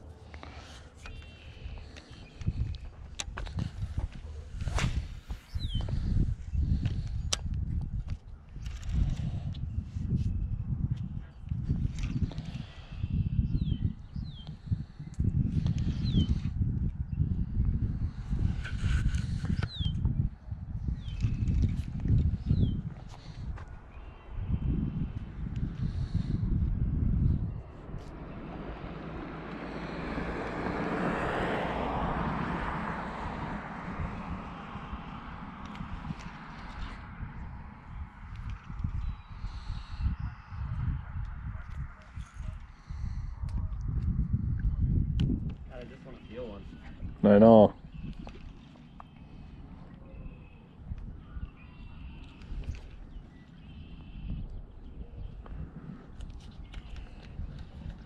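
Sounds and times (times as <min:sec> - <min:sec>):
steady vehicle-like noise: 0:00.0 - 0:58.0
wind buffeting microphone: 0:00.0 - 0:58.0.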